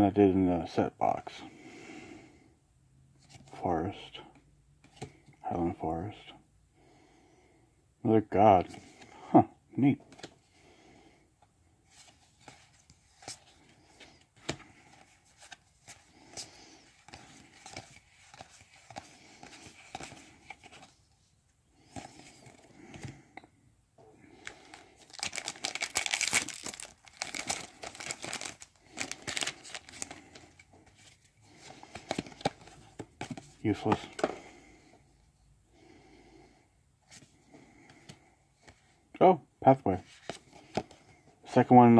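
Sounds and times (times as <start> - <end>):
trading cards being flipped: 12.0 - 21.0
crinkling: 24.4 - 33.5.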